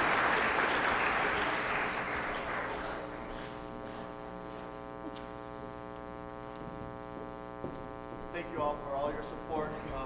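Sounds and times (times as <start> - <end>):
electrical mains hum: 0.0 - 10.0.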